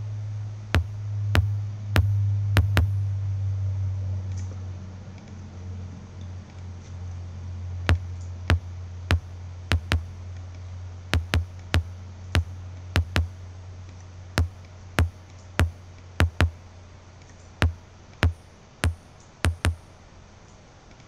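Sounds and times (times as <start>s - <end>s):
steady low bass tone: 0.0s - 3.3s, 7.9s - 10.2s, 11.2s - 13.4s, 14.4s - 16.6s
clicky kick drum hits: 0.8s - 3.0s, 7.9s - 10.2s, 11.2s - 13.4s, 14.4s - 16.6s, 17.6s - 19.8s.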